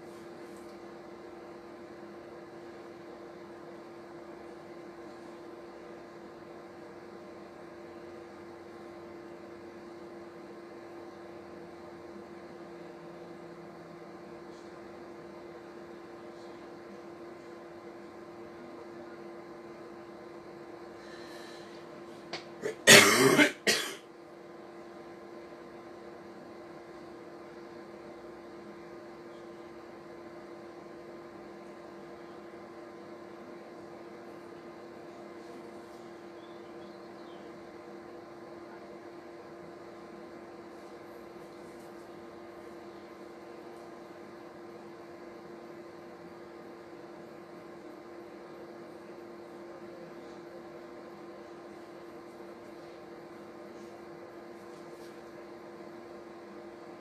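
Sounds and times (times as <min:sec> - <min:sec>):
steady low hum: 0:00.0 - 0:57.0
person coughing: 0:22.6 - 0:24.0.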